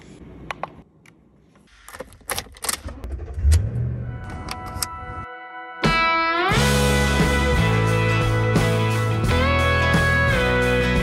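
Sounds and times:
vehicle engine starting: 2.3s - 5.3s.

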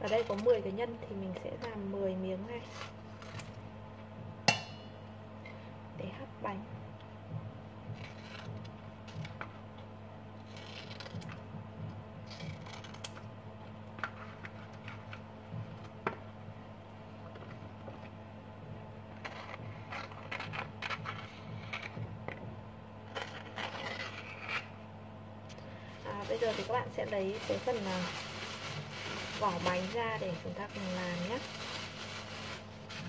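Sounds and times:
steady low hum: 0.0s - 33.0s
leaf rustling and scraping: 26.0s - 33.0s.

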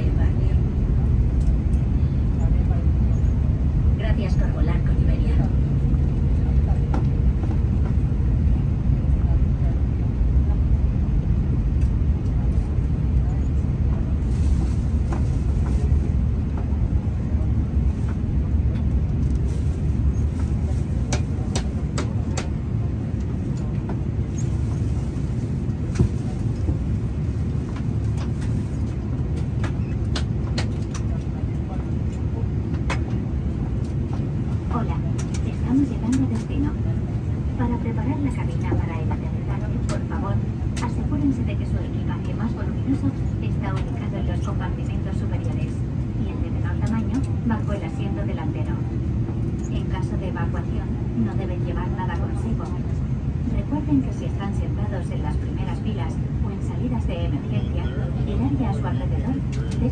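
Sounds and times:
aircraft cabin rumble: 0.0s - 59.9s.

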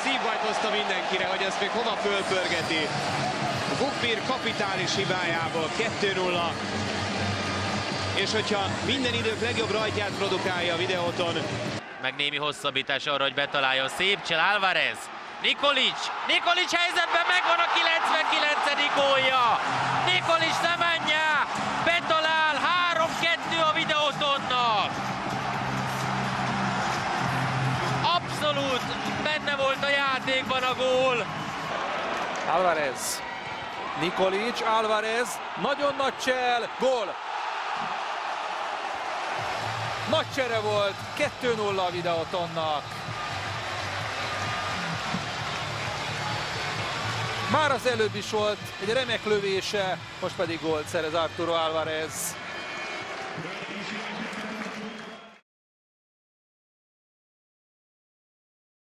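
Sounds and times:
stadium crowd noise: 0.0s - 55.4s.

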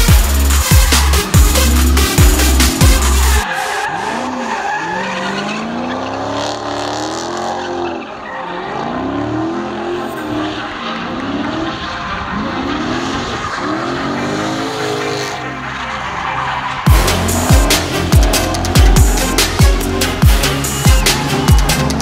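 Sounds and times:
car engine revving: 0.0s - 22.0s
tyres squealing and skidding: 0.0s - 22.0s.

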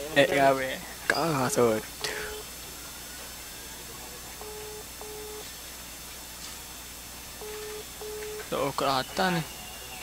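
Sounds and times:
telephone ringback tone: 4.4s - 5.4s, 7.4s - 8.4s.

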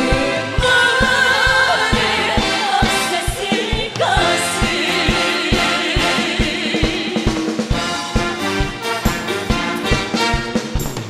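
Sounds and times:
women singing together: 0.0s - 7.6s
live band: 0.0s - 11.0s
steady drum beat: 0.0s - 11.0s.

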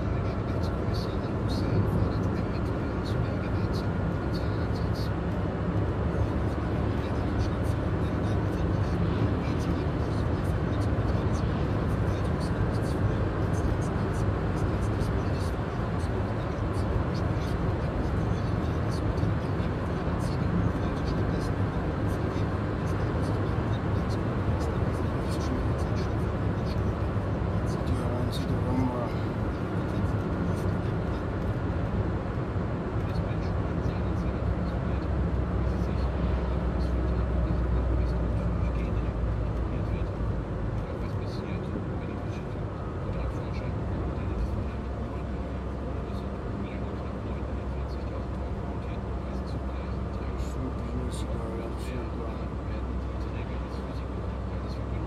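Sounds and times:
road and engine rumble in car: 0.0s - 55.0s.

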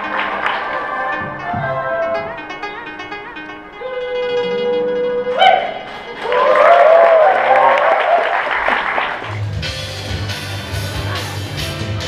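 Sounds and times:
audience applauding and cheering: 0.0s - 2.2s, 5.6s - 9.6s
background music with beat and bass: 0.0s - 6.2s, 9.3s - 12.0s
plucked-string instrumental piece: 0.0s - 6.6s.

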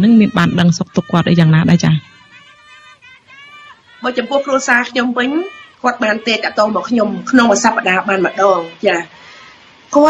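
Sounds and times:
person talking: 0.0s - 2.1s, 4.0s - 9.1s.

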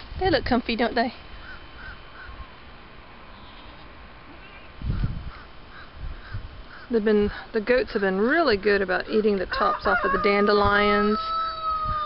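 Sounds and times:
birds calling: 1.3s - 2.7s, 3.3s - 7.5s.

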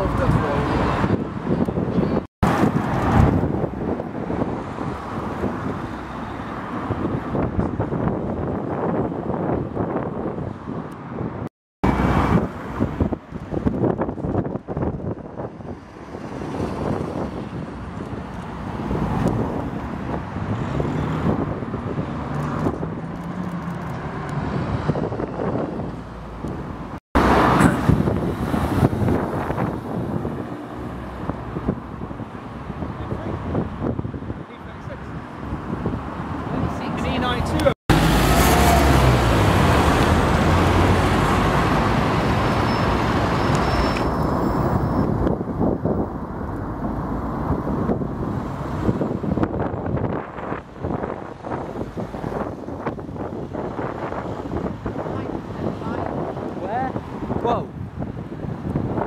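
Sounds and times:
vehicles driving past: 0.0s - 59.0s.

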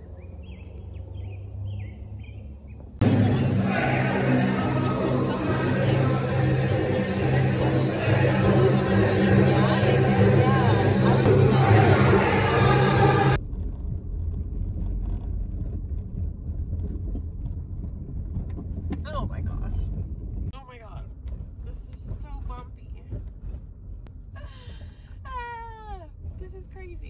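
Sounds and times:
car road noise rumble: 0.0s - 27.0s.

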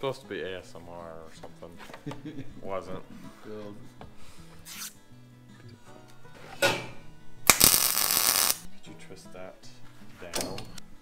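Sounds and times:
background music: 0.0s - 11.0s
arc welder crackling hiss: 7.5s - 8.7s.

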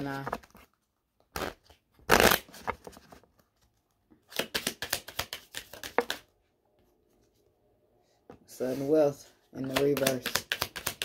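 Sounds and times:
cards being shuffled: 4.2s - 6.3s, 9.6s - 11.0s.

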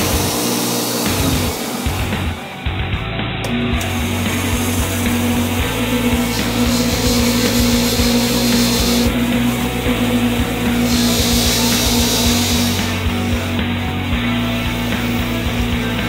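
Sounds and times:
metal polished on buffing wheel: 0.0s - 2.4s, 3.8s - 16.0s
buffing wheel whirring: 0.0s - 16.0s
rock music: 0.0s - 16.0s.

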